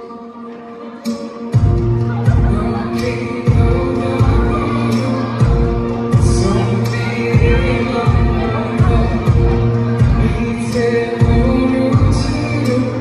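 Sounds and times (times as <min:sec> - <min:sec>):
live amplified band music: 0:00.0 - 0:13.0
person singing: 0:00.0 - 0:13.0
heavy kick drum beat: 0:03.5 - 0:04.8, 0:05.4 - 0:12.5.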